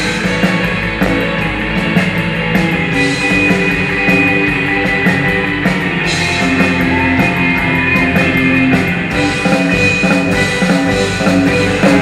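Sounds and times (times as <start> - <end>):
drum kit: 0.0 - 12.0
electric guitars: 0.0 - 12.0.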